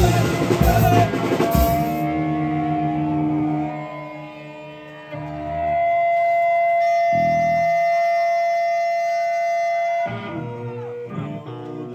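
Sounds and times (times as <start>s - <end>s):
band playing: 0.0s - 11.9s
harmonica long note: 0.0s - 11.9s.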